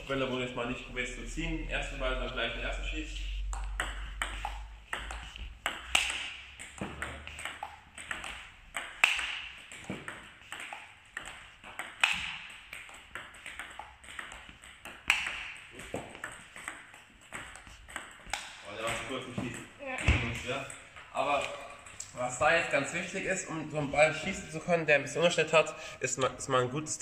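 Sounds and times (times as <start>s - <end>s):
ping pong ball clicking: 3.4s - 18.6s.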